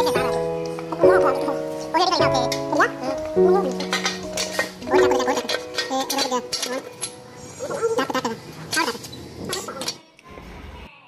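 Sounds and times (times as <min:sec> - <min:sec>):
person speaking: 0:00.0 - 0:07.0.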